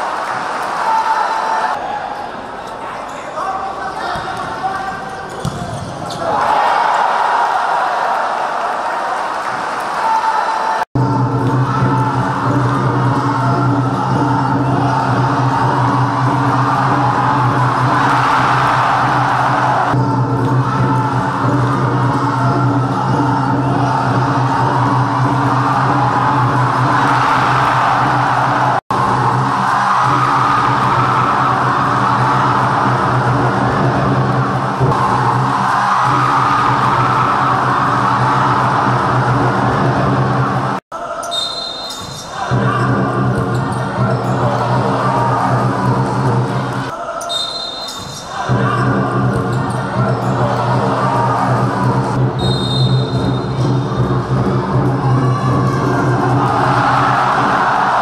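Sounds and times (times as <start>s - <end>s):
ball bouncing on court: 5.3s - 6.3s
loud background music: 11.0s - 40.8s, 42.5s - 46.9s, 48.4s - 58.0s
referee's whistle blast: 41.2s - 42.3s, 47.2s - 48.2s, 52.4s - 53.6s.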